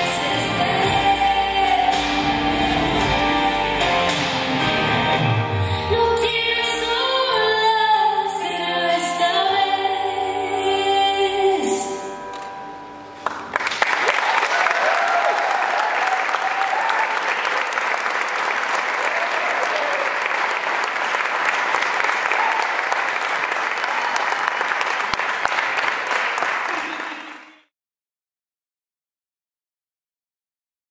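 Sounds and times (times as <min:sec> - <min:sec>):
music: 0:00.0 - 0:14.1
audience applause: 0:13.2 - 0:27.7
cheering voices: 0:14.0 - 0:27.7.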